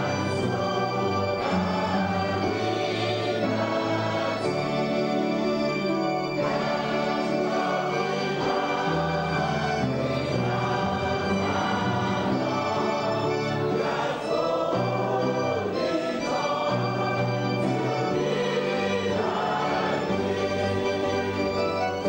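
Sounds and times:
congregation and choir singing hymn: 0.0s - 22.0s
instrumental accompaniment: 0.0s - 22.0s.

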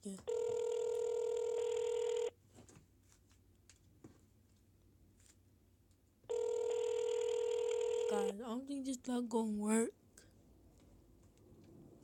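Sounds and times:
telephone ringback tone: 0.3s - 2.3s, 6.3s - 8.4s.

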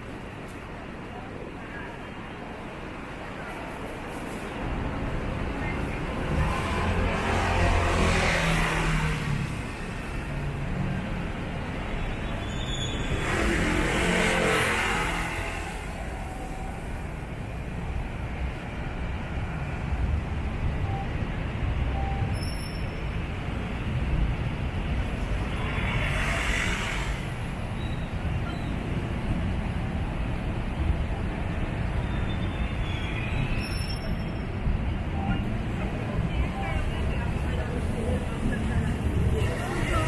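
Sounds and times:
traffic passing by: 0.0s - 40.0s.

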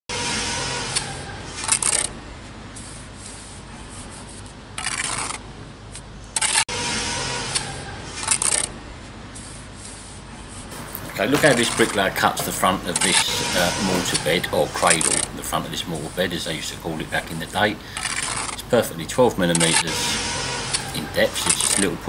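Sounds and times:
trowel scraping mortar: 9.4s - 22.0s.

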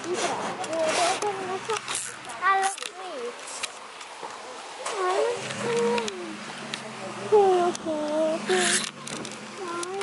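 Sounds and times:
high-pitched voices: 4.8s - 6.5s, 7.2s - 8.9s, 9.6s - 10.0s.

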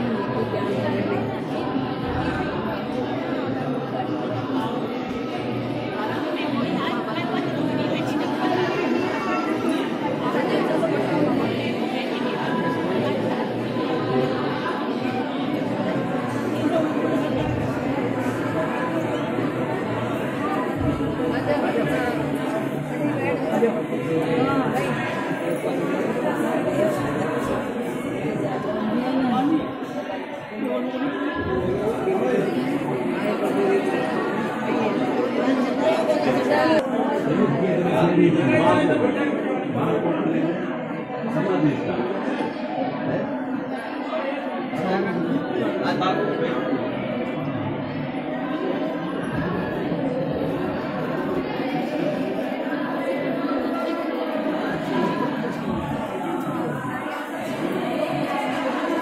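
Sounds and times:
crowd chatter: 0.0s - 59.0s.

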